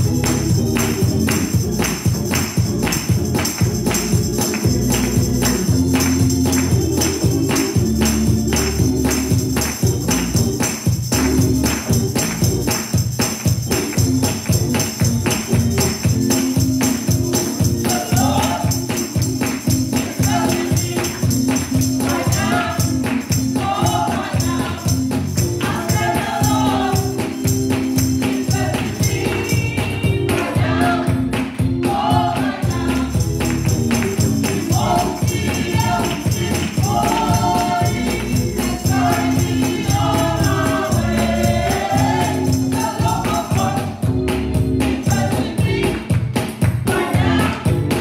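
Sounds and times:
choir singing gospel music: 0.0 - 48.0
steady beat: 0.0 - 48.0.

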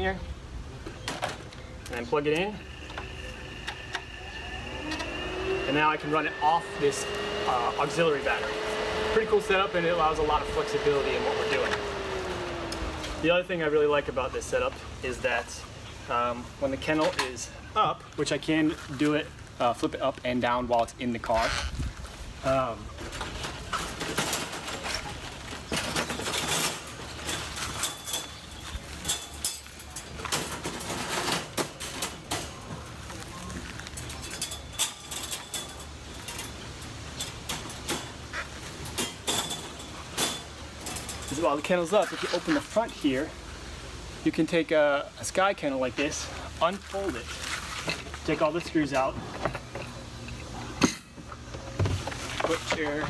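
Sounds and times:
wire panels rattling and clanking: 23.0 - 33.1, 33.9 - 43.2.

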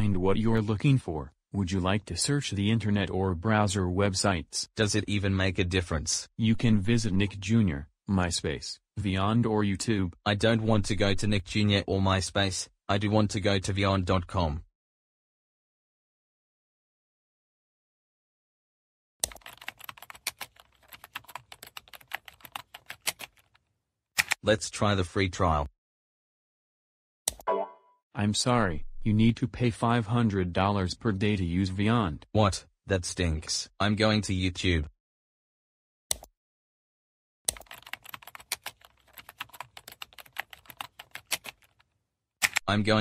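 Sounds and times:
keyboard typing: 19.2 - 23.6, 24.2 - 24.4, 37.5 - 41.8, 42.4 - 42.7.

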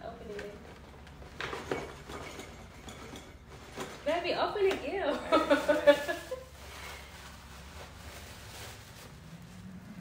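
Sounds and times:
low room hum: 0.0 - 10.0
tissue paper rustling: 5.3 - 10.0.

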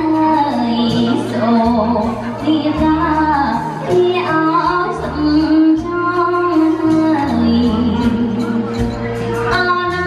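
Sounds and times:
woman singing: 0.0 - 10.0.

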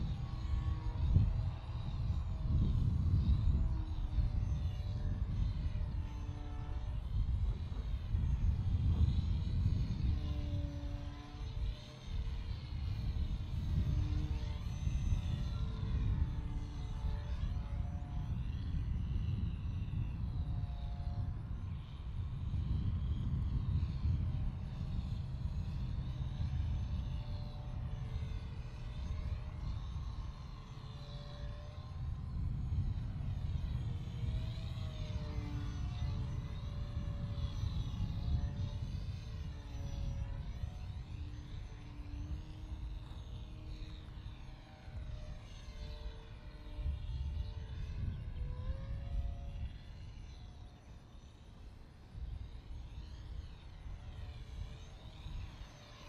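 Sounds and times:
constant low rumbling noise: 0.0 - 56.0
model plane motor whine: 0.0 - 56.0.

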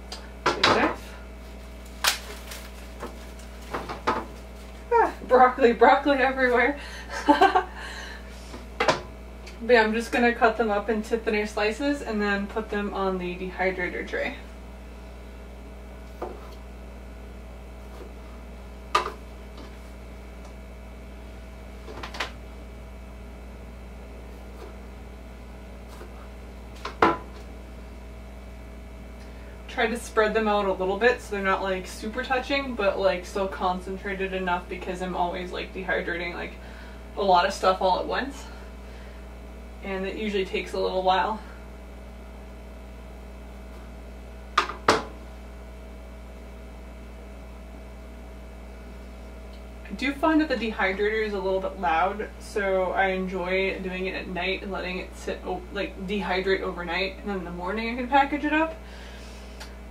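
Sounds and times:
steady low hum: 0.0 - 59.9
knocks on kitchen countertop: 27.0 - 27.3, 44.6 - 45.1.

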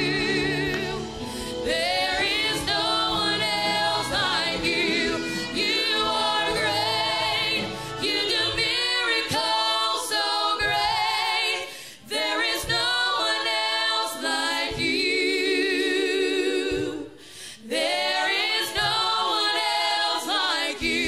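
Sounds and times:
choir singing gospel song: 0.0 - 21.0.

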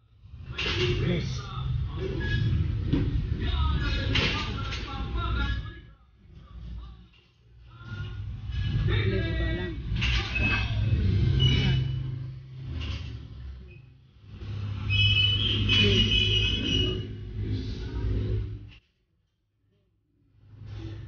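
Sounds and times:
steady low hum: 0.0 - 18.8
indistinct voices: 0.2 - 18.8.

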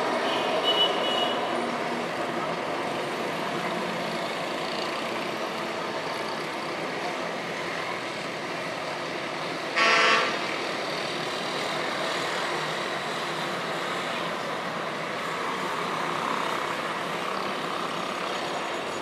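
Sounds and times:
street traffic: 0.0 - 19.0
vehicle horn honk: 9.8 - 10.4.

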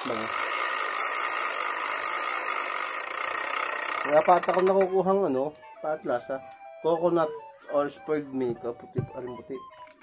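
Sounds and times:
plastic spinner wheel whirring: 0.0 - 10.0.

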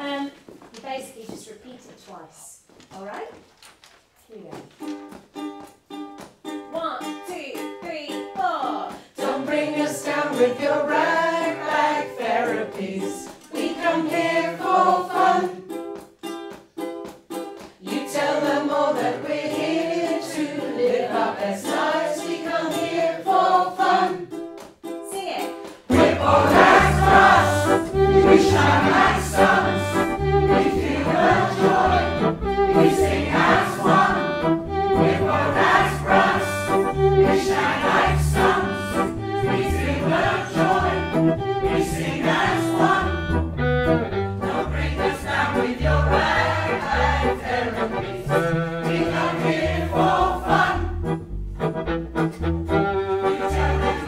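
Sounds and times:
ukulele strumming: 4.6 - 54.0
group of people singing: 9.1 - 15.7, 17.8 - 24.4, 25.9 - 43.4, 44.4 - 50.9, 53.2 - 54.0
large choir singing: 9.2 - 15.6, 17.9 - 24.3, 25.9 - 43.4, 44.4 - 48.0, 48.8 - 50.9, 53.4 - 54.0
low accompaniment on a beat: 24.4 - 54.0.

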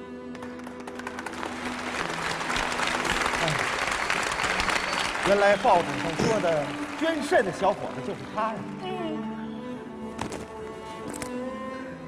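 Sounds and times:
soft background music: 0.0 - 12.0
audience applause: 0.3 - 8.8.

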